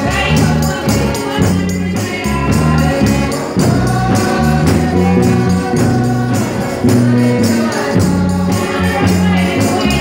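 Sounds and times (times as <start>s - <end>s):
choir-like singing: 0.0s - 10.0s.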